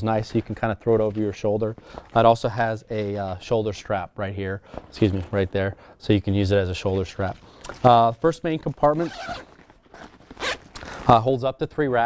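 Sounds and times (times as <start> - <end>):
zipper pulled open: 8.9 - 11.2.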